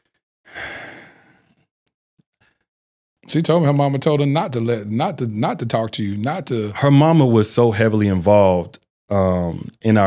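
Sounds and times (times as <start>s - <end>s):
man sighing: 0.5s - 1.5s.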